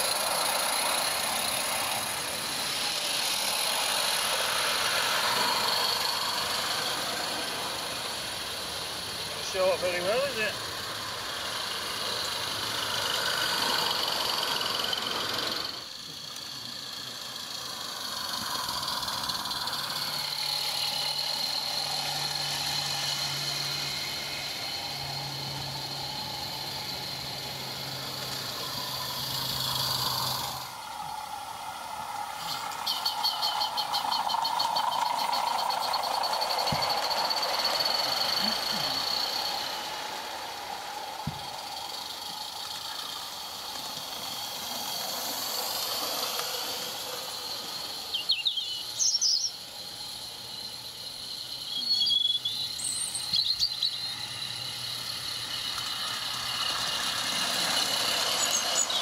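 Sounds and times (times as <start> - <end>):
sharp ticks: 0.0 - 25.4, 27.0 - 31.4, 32.3 - 49.5, 52.4 - 59.0
small wheels on metal track: 0.0 - 59.0
steam hiss: 0.0 - 59.0.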